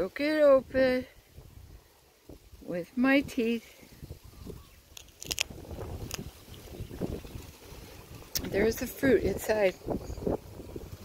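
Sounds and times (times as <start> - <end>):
wind rumbling on microphone: 0.0 - 11.0
handling clicks and crackles: 5.0 - 6.2.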